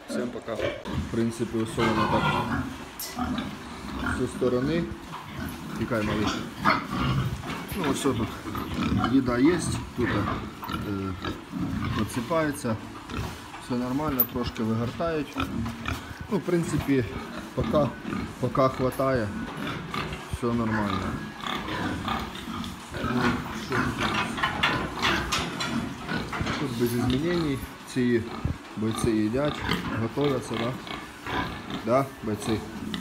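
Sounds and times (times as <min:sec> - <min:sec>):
pigs grunting: 0:00.0 - 0:33.0.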